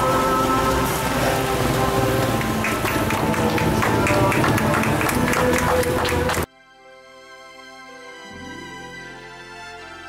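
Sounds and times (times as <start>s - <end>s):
rain patter: 0.0s - 6.5s
music of sustained notes: 0.0s - 10.0s.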